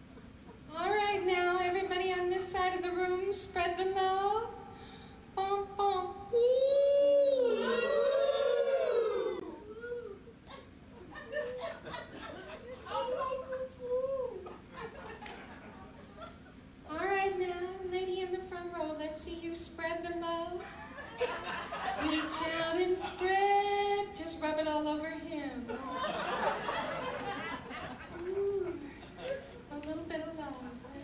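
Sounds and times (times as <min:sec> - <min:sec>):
voices: 0:11.1 - 0:31.0
scattered claps: 0:15.2 - 0:15.6.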